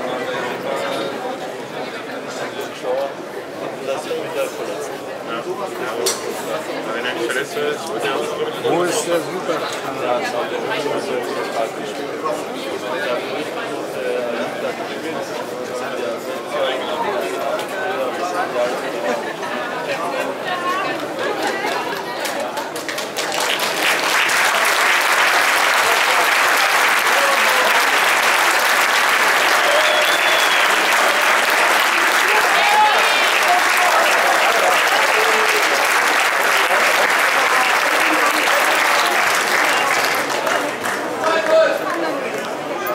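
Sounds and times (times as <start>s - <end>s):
crowd voices: 0.0s - 42.9s
crowd applauding: 21.0s - 42.6s.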